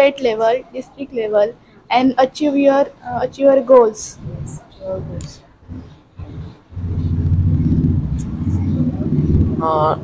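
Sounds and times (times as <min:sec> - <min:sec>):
loud low engine-like rumble: 0:04.2 - 0:10.0.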